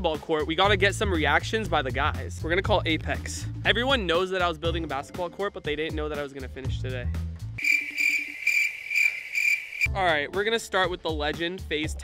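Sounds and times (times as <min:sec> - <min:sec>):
high pulsing ringing tone: 0:07.6 - 0:08.8.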